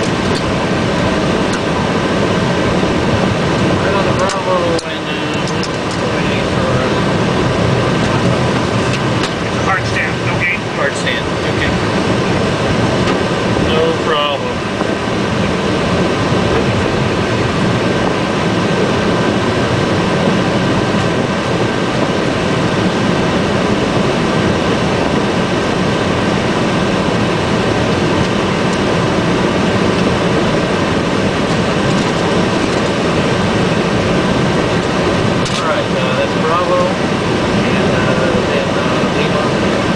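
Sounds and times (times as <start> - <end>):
air-conditioning rush: 0.0 - 39.9
jet engines idling: 0.0 - 39.9
thin steady whine: 0.0 - 39.9.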